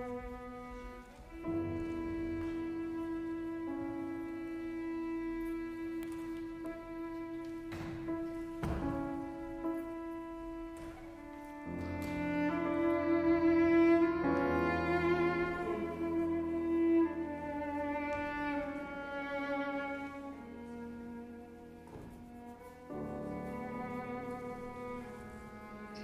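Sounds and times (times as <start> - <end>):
bowed cello notes: 0.0 - 26.0
piano: 0.0 - 26.0.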